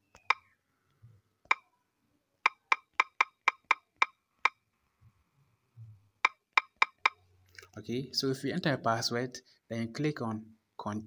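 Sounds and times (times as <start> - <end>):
phone keyboard key clicks: 2.5 - 4.6.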